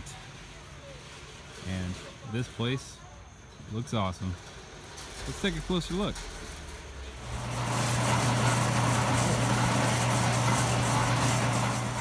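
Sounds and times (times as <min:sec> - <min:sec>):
motor running: 0:07.2 - 0:12.0.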